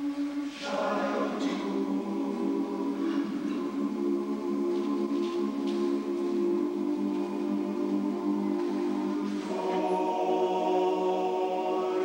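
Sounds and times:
men's chorus singing a cappella: 0.0 - 12.0.

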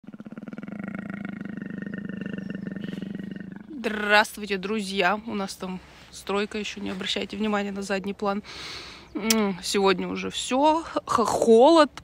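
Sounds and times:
big cat growling: 0.0 - 4.2.

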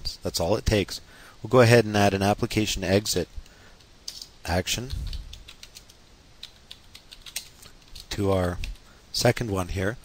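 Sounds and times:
keyboard typing: 4.1 - 8.8.

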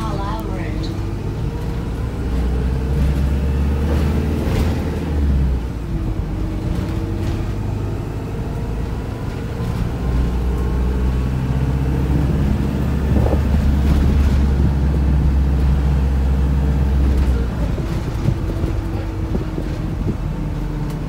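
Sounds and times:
bus engine drone: 0.0 - 21.0
road rumble: 0.0 - 21.0
body rattles: 13.1 - 15.9, 16.9 - 21.0.

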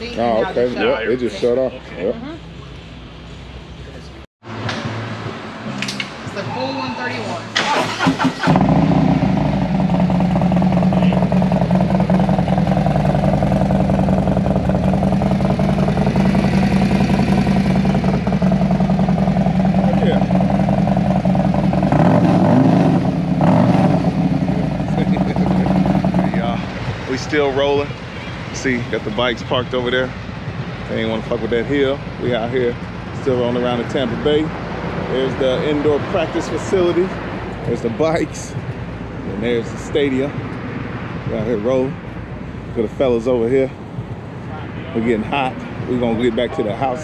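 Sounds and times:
motorcycle engine starting and idling: 4.5 - 30.1.

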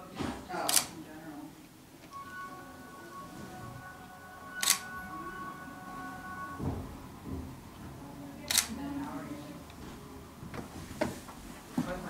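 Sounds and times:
camera shutter clicks: 8.5 - 8.7.

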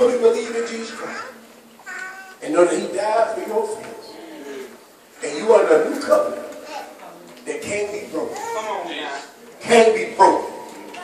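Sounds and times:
man preaching into a microphone: 0.0 - 1.4, 2.4 - 6.5, 7.5 - 11.0.

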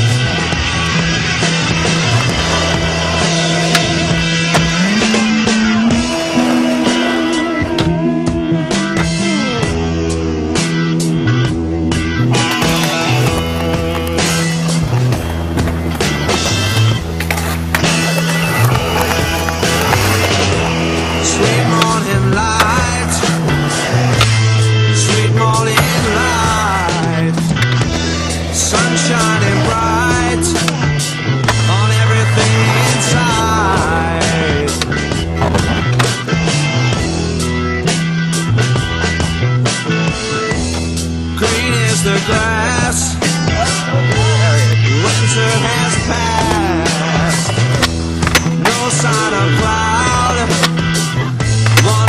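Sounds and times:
skateboard wheels rolling on concrete: 0.0 - 9.8, 10.6 - 52.0
rock music: 0.0 - 52.0
skateboard clacks: 12.2 - 37.1, 44.0 - 52.0.

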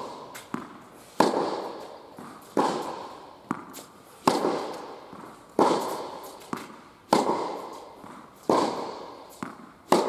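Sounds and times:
racket hitting tennis ball: 0.0 - 10.0
tennis ball tap: 0.0 - 10.0.

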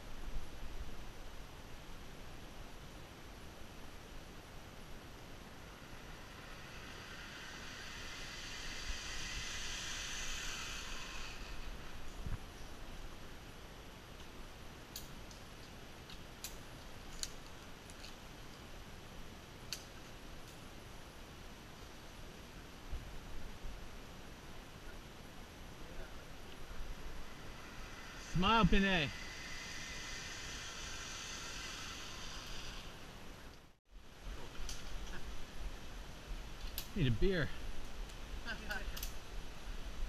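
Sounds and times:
outdoor background hiss: 0.0 - 40.0
zip line trolley hissing on cable: 4.5 - 13.5, 24.7 - 33.8.

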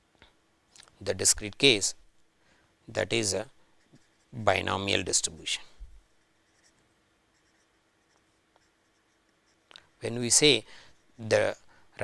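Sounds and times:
low steady hum: 0.0 - 12.0
marker pen scratching on paper: 3.8 - 5.3, 6.1 - 11.5.

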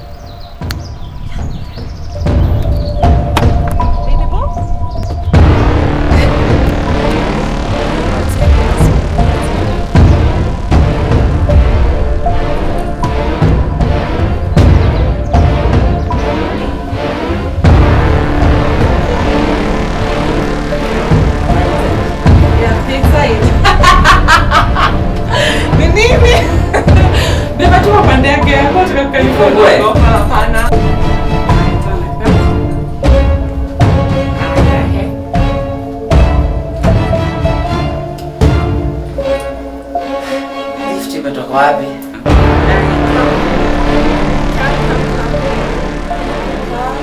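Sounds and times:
small birds chirping: 0.0 - 5.8
background music: 0.0 - 47.0
low rumble: 2.2 - 37.5, 42.2 - 47.0
woman laughing: 23.5 - 27.6.

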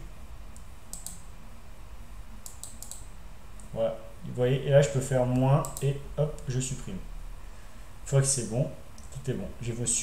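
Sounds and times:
low steady hum: 0.0 - 10.0
computer mouse clicks: 0.5 - 1.3, 2.4 - 3.7, 5.3 - 6.5.

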